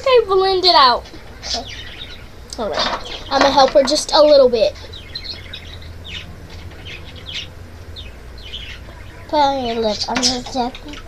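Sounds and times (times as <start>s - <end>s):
low steady hum: 0.0s - 11.0s
bird chirping: 0.7s - 11.0s.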